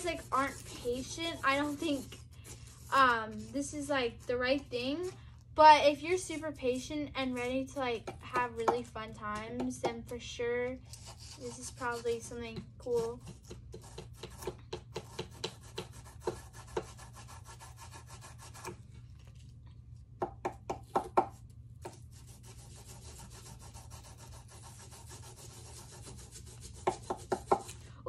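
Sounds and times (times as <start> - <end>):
tools scraping crumbly plaster: 0.0 - 5.2, 6.2 - 19.8.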